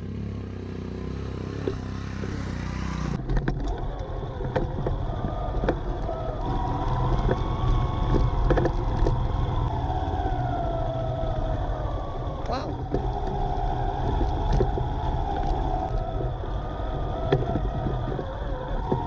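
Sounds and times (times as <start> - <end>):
small motorbike engine running: 0.0 - 19.0
wind rumble on microphone: 1.6 - 19.0
small knocks: 7.0 - 9.2.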